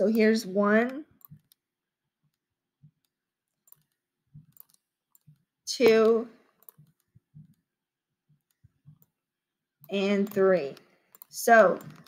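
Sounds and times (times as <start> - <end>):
computer mouse clicks: 0.0 - 1.6, 2.3 - 7.6, 9.8 - 12.0.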